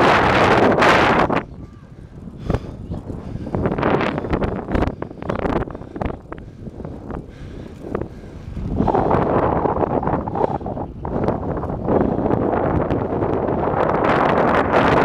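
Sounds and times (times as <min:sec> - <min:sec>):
wind rushing over microphone: 0:00.0 - 0:15.0.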